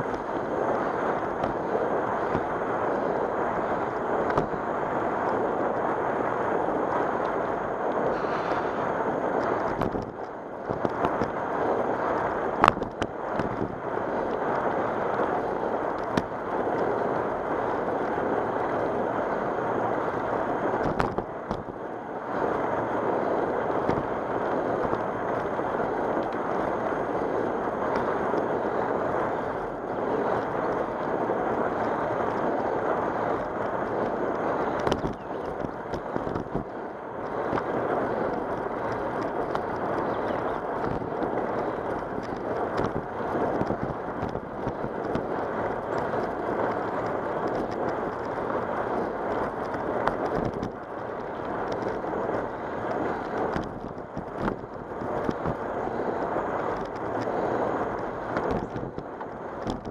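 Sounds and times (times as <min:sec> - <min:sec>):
tyres rolling on asphalt: 0:00.0 - 0:59.9
wind rushing on microphone: 0:00.0 - 0:59.9.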